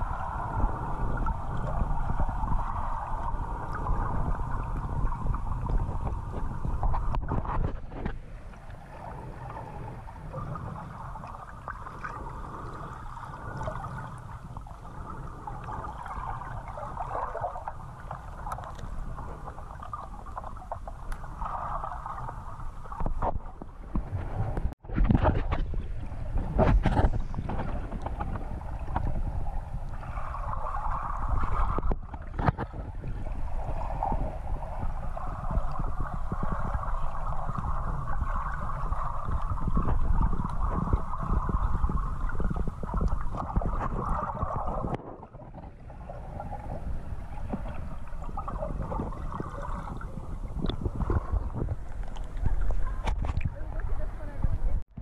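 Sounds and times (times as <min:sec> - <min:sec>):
underwater water rushing: 0:00.0 - 0:55.0.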